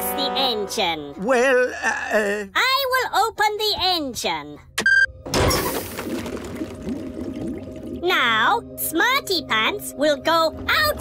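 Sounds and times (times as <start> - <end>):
wobbly warbling sounds: 5.6 - 8.6, 10.0 - 11.0.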